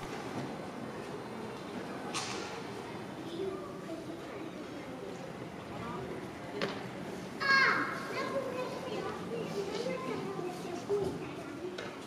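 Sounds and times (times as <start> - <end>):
murmur of crowd: 0.0 - 12.0.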